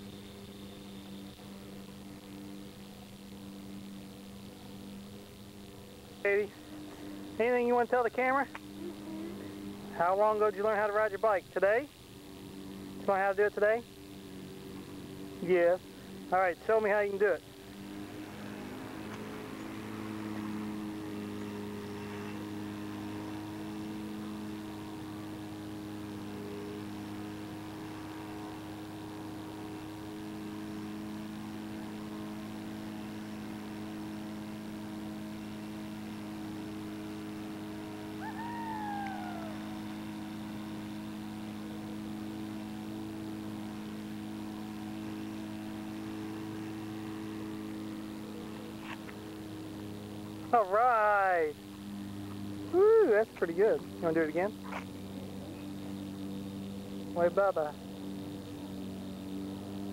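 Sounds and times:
steady electrical hum: 0:00.0 - 0:59.9
call sliding downward in pitch: 0:38.0 - 0:40.8.

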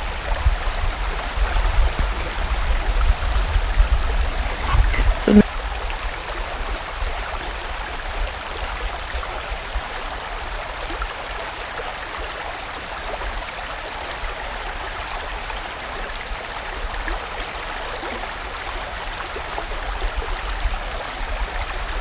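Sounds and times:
stream rushing over rocks: 0:00.0 - 0:22.0.

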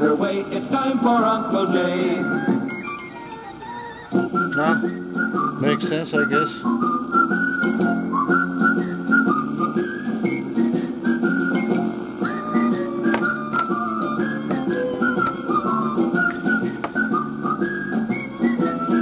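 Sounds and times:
whistle-like melody: 0:02.1 - 0:12.9, 0:15.4 - 0:19.0.

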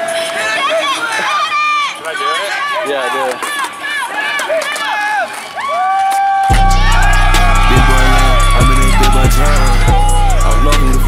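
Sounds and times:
people shouting high-pitched cries: 0:00.0 - 0:11.0.

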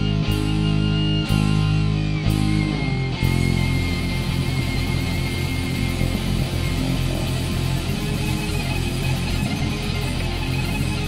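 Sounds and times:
rock band playing live: 0:00.0 - 0:11.0.

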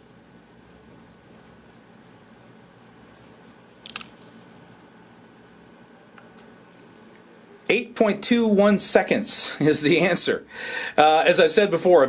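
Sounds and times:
low steady hum: 0:00.0 - 0:12.0
soft hissy noise: 0:00.0 - 0:12.0.

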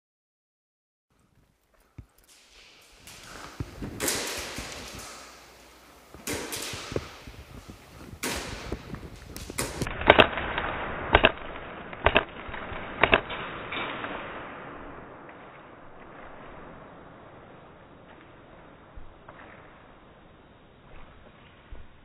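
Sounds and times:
airsoft gunfire echoing: 0:02.3 - 0:18.1.

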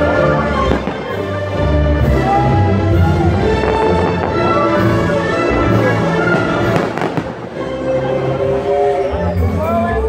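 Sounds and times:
orchestral music holding a chord: 0:00.0 - 0:10.0
firework bang: 0:06.3 - 0:07.6.

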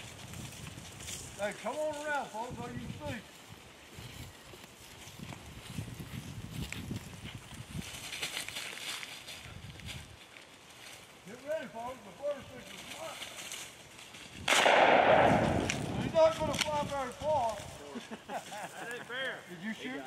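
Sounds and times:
shotgun shot: 0:14.5 - 0:16.1.

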